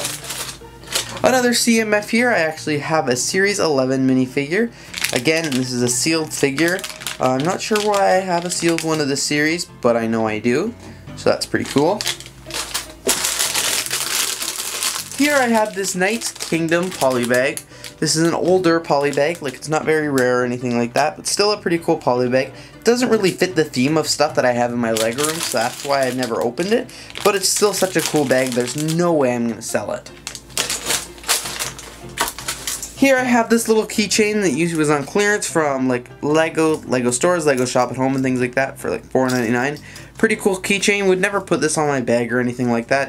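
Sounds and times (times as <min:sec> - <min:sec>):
small items clicking against bin: 0:00.0 - 0:01.2, 0:06.4 - 0:09.0, 0:11.6 - 0:17.6, 0:30.2 - 0:33.0
plastic bags crinkling: 0:00.0 - 0:01.6, 0:04.8 - 0:09.4, 0:11.4 - 0:20.3, 0:23.0 - 0:33.7.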